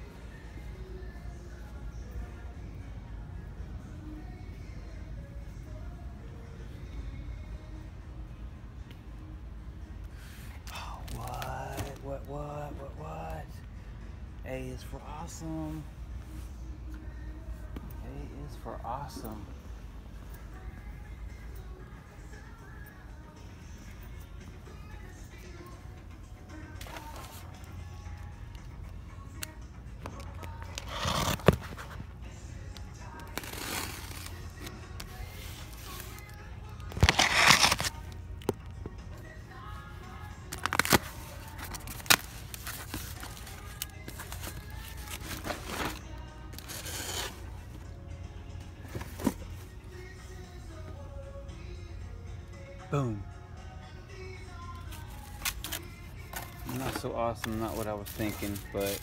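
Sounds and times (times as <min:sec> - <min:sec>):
faint background music: 0:00.0 - 0:59.0
cardboard packaging rustling: 0:30.2 - 0:32.1, 0:33.2 - 0:38.1, 0:40.5 - 0:47.7, 0:54.9 - 0:59.0.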